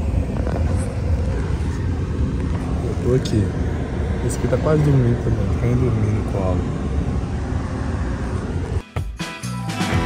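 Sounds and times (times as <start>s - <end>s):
road and engine noise in car: 0.0s - 8.9s.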